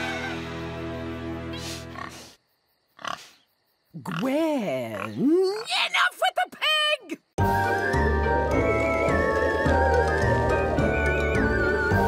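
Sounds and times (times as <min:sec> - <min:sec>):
cartoon pig snort: 0:01.6 - 0:02.4.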